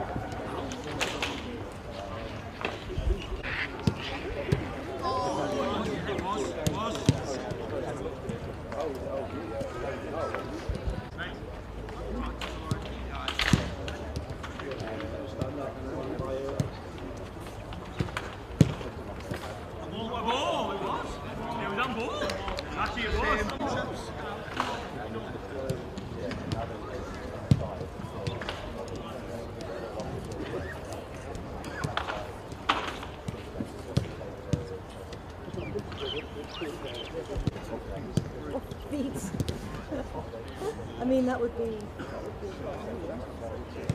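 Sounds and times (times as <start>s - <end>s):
players calling and chatting: 0.0s - 43.9s.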